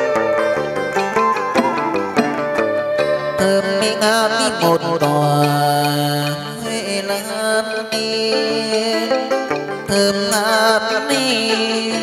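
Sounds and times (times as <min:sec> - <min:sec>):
traditional instrumental accompaniment: 0:00.0 - 0:12.0
person singing with vibrato: 0:03.1 - 0:12.0.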